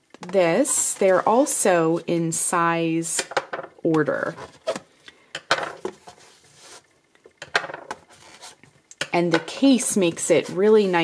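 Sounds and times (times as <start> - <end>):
soft rustling: 5.9 - 7.0.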